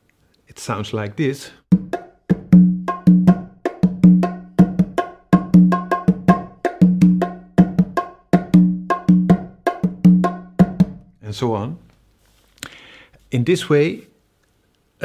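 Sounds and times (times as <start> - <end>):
hand drums samba groove: 1.7 - 11.1
ringing conga open tones: 1.7 - 11.1.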